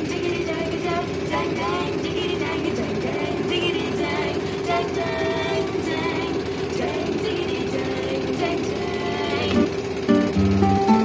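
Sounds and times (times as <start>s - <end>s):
small boat engine running: 0.0s - 11.0s.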